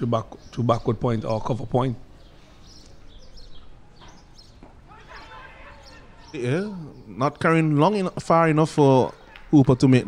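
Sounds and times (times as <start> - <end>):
faint distant voices: 0.0 - 10.0
outdoor field ambience: 0.0 - 10.0.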